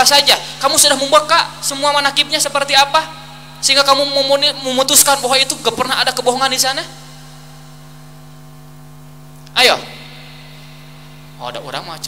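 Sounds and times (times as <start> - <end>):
electrical mains hum: 0.0 - 12.0.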